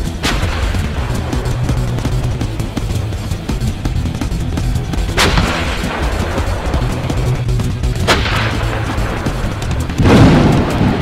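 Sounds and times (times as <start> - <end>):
background music: 0.0 - 11.0
artillery gun firing: 5.1 - 7.2, 8.0 - 11.0.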